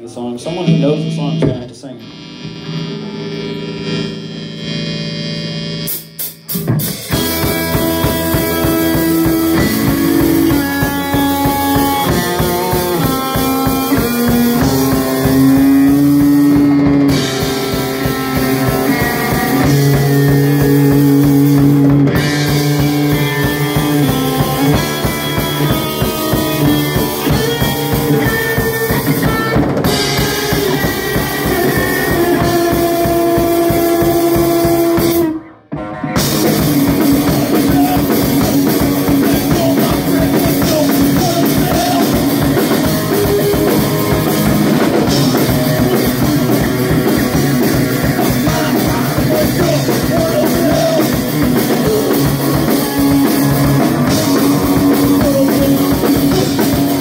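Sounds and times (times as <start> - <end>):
live rock band: 0.0 - 57.0
held guitar chord ringing: 0.3 - 5.9.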